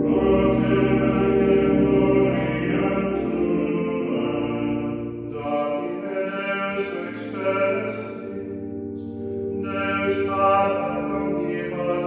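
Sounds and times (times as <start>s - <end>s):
voices singing chant: 0.0s - 8.4s.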